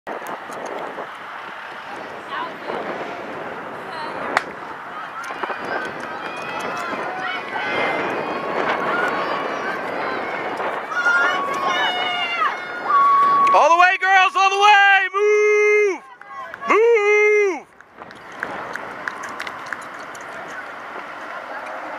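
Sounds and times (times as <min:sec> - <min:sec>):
spectators shouting and cheering: 0:01.4 - 0:21.9
spectators chatting: 0:01.6 - 0:21.9.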